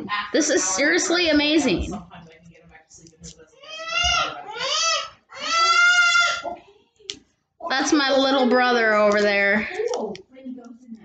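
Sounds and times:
child wailing: 3.6s - 6.5s.

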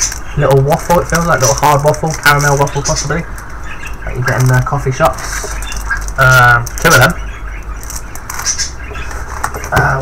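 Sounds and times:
foil packets rustling: 0.0s - 7.2s, 7.8s - 10.0s
low steady hum: 0.0s - 10.0s.

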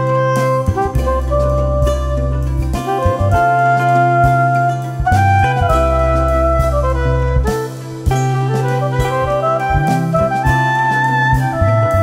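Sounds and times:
steady bass: 0.0s - 12.0s
wind instrument jazz melody: 0.0s - 12.0s.

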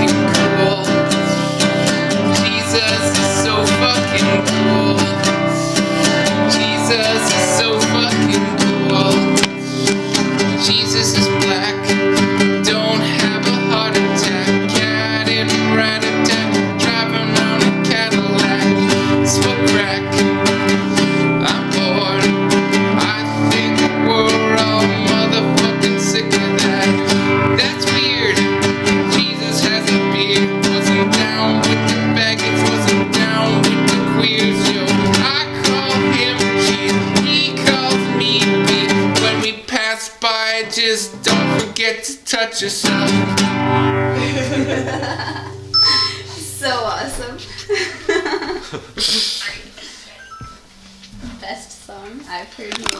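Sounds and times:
acoustic guitar strummed: 0.0s - 47.8s.

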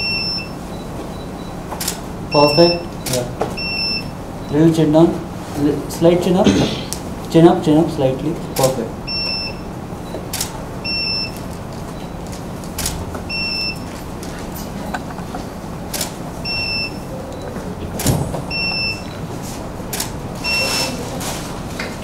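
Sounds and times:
camera shutter clicks: 10.3s - 10.5s, 12.8s - 13.0s.

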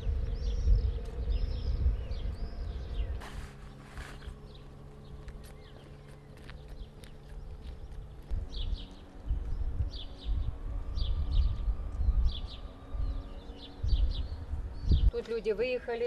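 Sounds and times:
loud low rumble: 0.0s - 5.9s, 7.5s - 15.2s
birds chirping: 0.0s - 16.0s
faint low hum: 0.0s - 16.0s.

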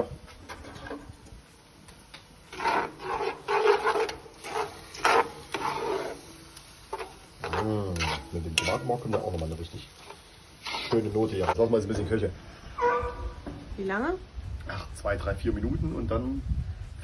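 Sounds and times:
spatula scraping in a pot: 2.5s - 12.1s.

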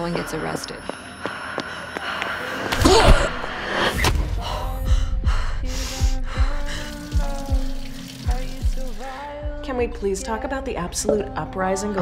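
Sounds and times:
dark trailer music: 0.0s - 7.5s.

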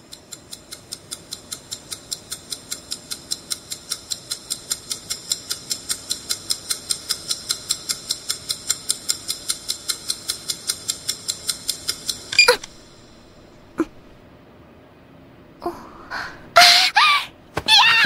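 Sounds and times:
stopwatch ticking: 0.0s - 14.1s.

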